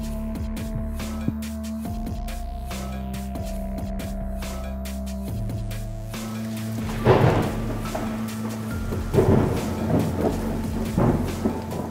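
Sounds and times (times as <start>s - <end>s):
low music drone: 0.0s - 11.9s
steady rain: 5.2s - 11.9s
thunder rumbling: 6.0s - 11.9s.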